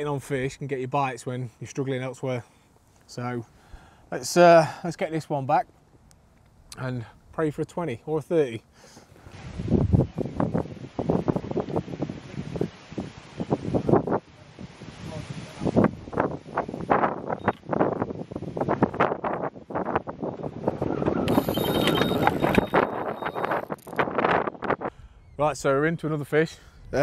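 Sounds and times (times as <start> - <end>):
wind buffeting microphone: 9.2 - 25.8
bite alarm high steady tone: 21.3 - 23.6.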